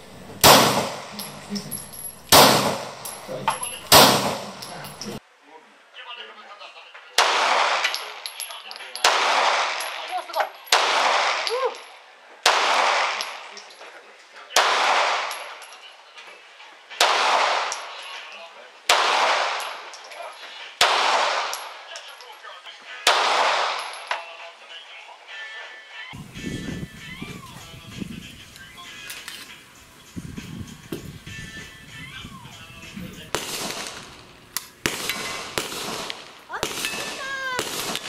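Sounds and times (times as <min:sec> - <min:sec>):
pistol shots with echo: 0:00.1 - 0:05.2, 0:07.2 - 0:08.3, 0:09.0 - 0:10.1, 0:10.7 - 0:11.8, 0:12.4 - 0:13.6, 0:14.6 - 0:15.6, 0:17.0 - 0:18.3, 0:18.9 - 0:19.9, 0:20.8 - 0:21.9, 0:23.0 - 0:24.3, 0:32.7 - 0:38.0.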